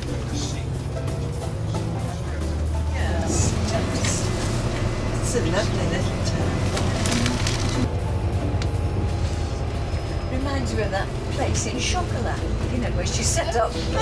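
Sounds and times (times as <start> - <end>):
indistinct voices: 0.0 - 7.9
bus engine rumbling: 0.0 - 14.0
music: 0.0 - 14.0.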